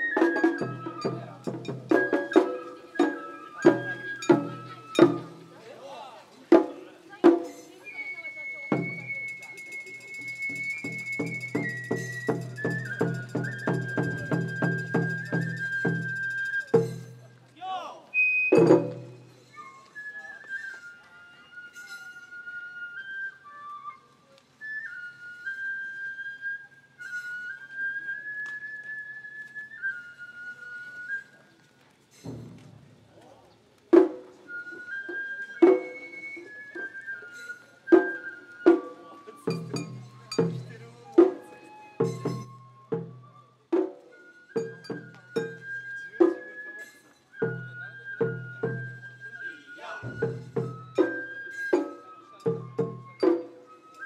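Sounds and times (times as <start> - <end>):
bamboo flute melody: 0.0 - 54.0.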